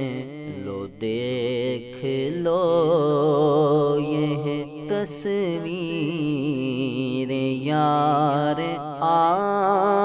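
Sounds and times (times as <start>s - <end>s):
man singing melismatic line: 0.0s - 3.2s.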